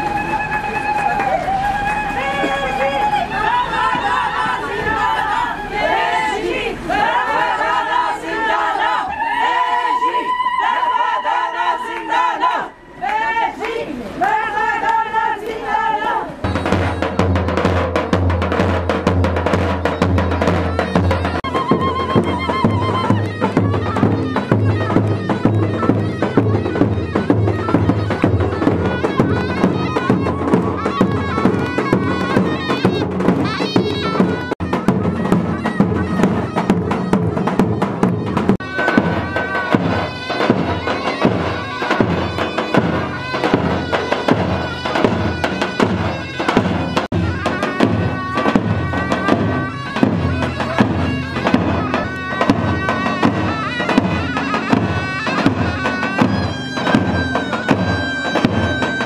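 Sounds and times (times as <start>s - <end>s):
folk melody line: 16.2s - 59.0s
bass drums beating dance rhythm: 16.4s - 58.7s.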